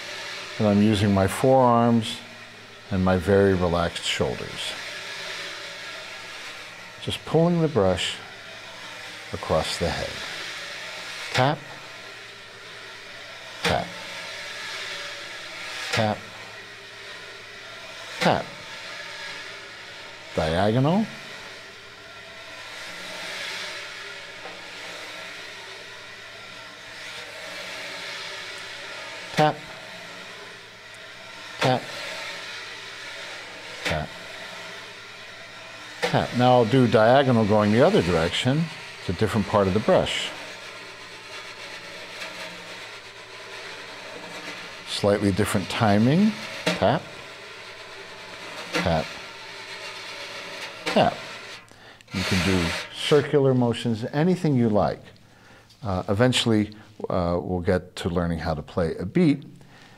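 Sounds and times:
wire brush swishing on snare drum: 0.0 - 57.2.

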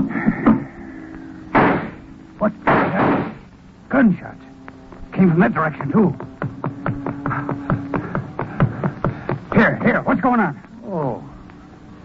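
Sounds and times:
low steady hum: 0.0 - 12.0
reverberant gunshots: 1.5 - 3.5.

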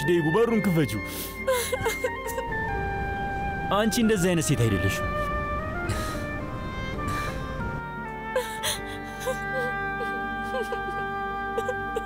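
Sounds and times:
background music chords: 0.0 - 12.0
woman sobbing: 1.2 - 2.6, 5.8 - 7.6, 8.2 - 12.0.

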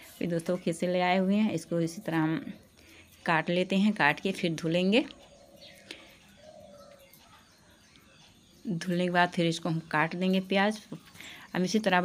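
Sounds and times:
bird chirp: 0.0 - 12.0
low cooing bird call: 5.2 - 7.9.

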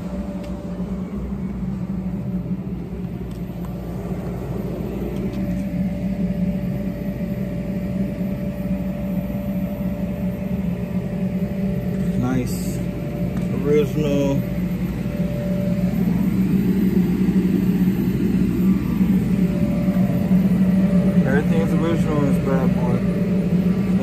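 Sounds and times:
lower tone sliding down: 0.0 - 24.0
motor hum with steady tone: 0.0 - 24.0.

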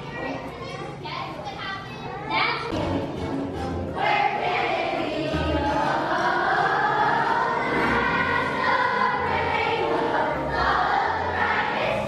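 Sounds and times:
child's voice: 0.0 - 2.8
music playing: 2.7 - 12.0.

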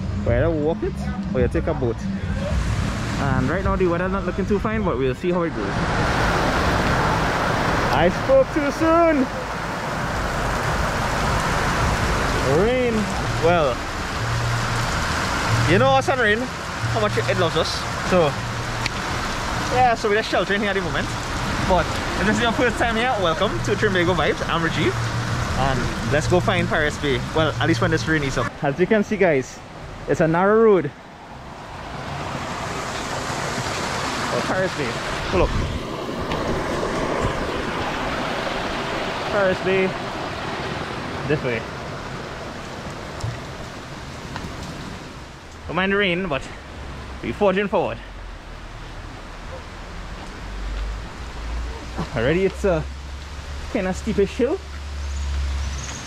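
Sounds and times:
heavy rain hissing: 5.5 - 28.5, 31.4 - 56.0.

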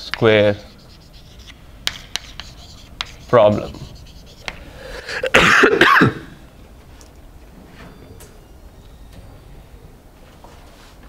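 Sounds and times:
person clearing throat: 5.0 - 6.4.

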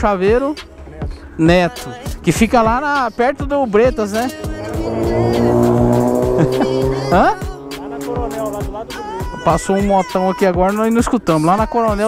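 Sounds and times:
motorcycle passing by: 4.2 - 9.8.

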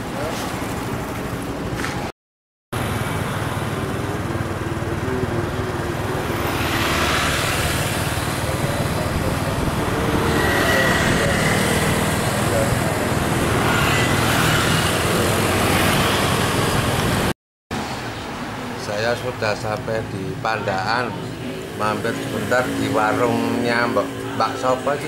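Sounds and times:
road traffic passing: 0.0 - 2.1, 2.8 - 25.0
motorcycle engine: 2.8 - 17.3, 21.4 - 25.0.

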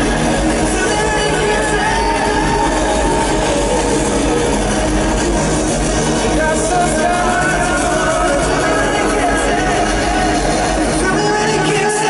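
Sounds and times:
live concert music with acoustic guitar: 0.0 - 12.0.

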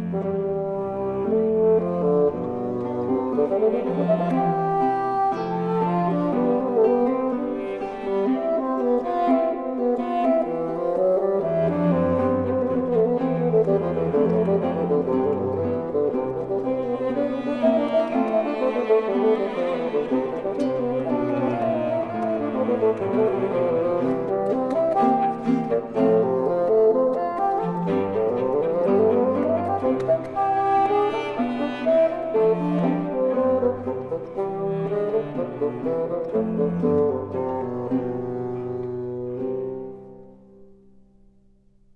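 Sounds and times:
bassoon with cello and guitar: 0.0 - 41.0.

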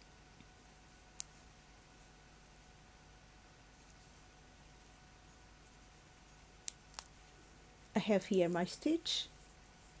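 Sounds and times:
metal needles clicking together: 1.1 - 1.4, 6.6 - 7.2.

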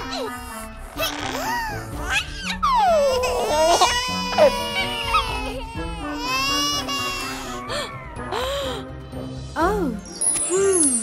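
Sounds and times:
cartoon piglet crying: 0.0 - 7.9
light background music: 0.0 - 11.0.

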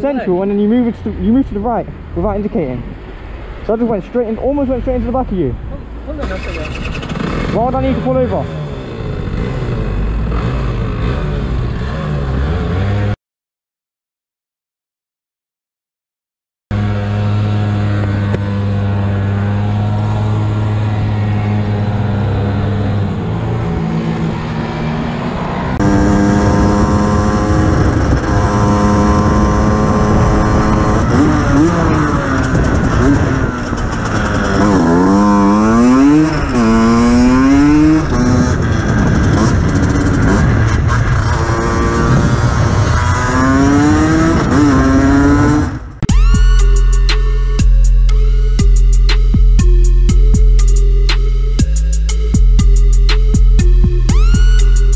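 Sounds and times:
motorcycle engine revving: 6.1 - 13.2, 16.7 - 54.9
music with a beat: 46.1 - 54.9.

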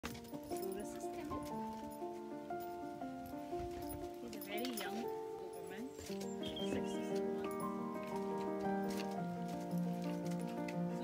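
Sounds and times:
background music with light beat: 0.0 - 11.0.

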